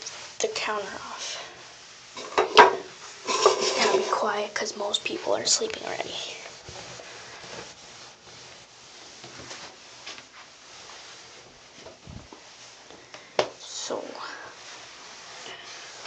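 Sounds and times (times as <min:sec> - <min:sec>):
towel wiping a counter: 0:00.0 - 0:16.0.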